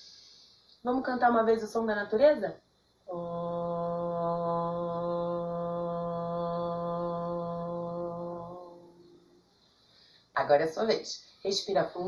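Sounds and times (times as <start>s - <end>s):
woman chanting om: 3.1s - 9.4s.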